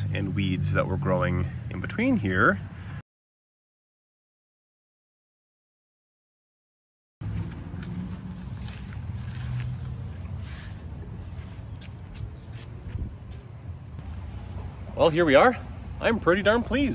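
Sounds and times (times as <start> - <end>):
faint rustles: 7.2 - 13.6
wind buffeting microphone: 10.8 - 13.6.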